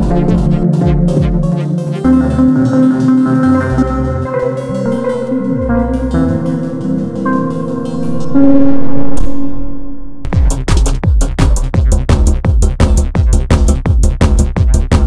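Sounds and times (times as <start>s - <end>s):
melodic music with bass line: 0.0s - 15.0s.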